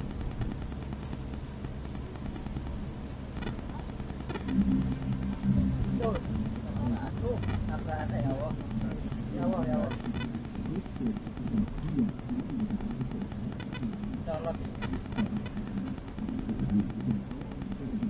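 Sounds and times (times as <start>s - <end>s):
heavy rain: 0.0s - 18.0s
light clicks and ticks: 0.0s - 18.0s
vehicle cab drone: 0.0s - 18.0s
muffled talk: 3.5s - 16.0s.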